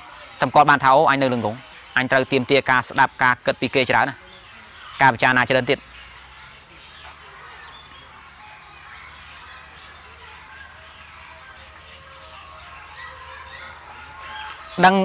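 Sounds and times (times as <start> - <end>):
faint bird chirps: 0.0 - 15.0
outdoor background noise: 0.0 - 15.0
man talking: 0.4 - 4.2, 5.0 - 5.8, 14.8 - 15.0.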